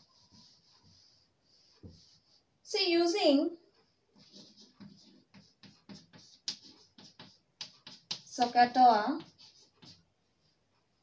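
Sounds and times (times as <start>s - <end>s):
chalk scratching on blackboard: 0.0s - 2.4s, 4.2s - 10.5s
woman speaking: 2.7s - 3.6s, 8.3s - 9.3s.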